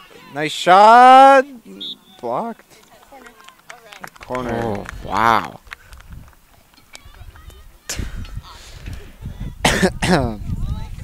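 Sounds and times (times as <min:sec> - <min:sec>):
person coughing: 0:09.6 - 0:10.3.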